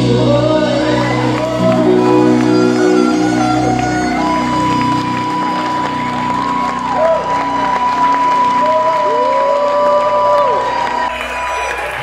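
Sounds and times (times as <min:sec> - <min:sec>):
band playing: 0:00.0 - 0:12.0
audience cheering and applauding: 0:00.7 - 0:12.0.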